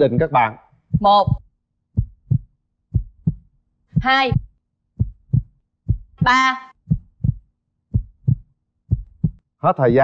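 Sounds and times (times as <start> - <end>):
heartbeat double thump: 0.0 - 9.4.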